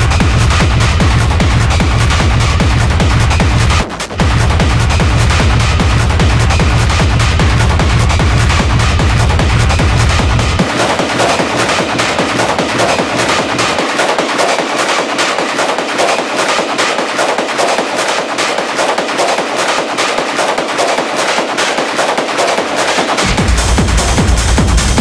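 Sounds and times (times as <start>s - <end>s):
rapid percussion hits: 0.0s - 25.0s.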